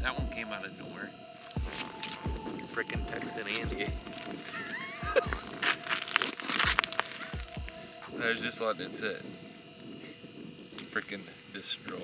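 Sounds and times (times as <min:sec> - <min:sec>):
faint steady hum: 0:00.0 - 0:12.0
winter jacket rustling: 0:01.3 - 0:08.4
snow crunching: 0:01.4 - 0:08.4.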